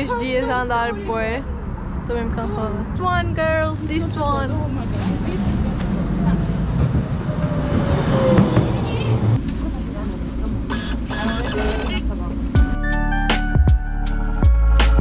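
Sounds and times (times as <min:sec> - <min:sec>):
tram rumbling with motor whine: 0:00.0 - 0:12.7
background music: 0:12.4 - 0:15.0.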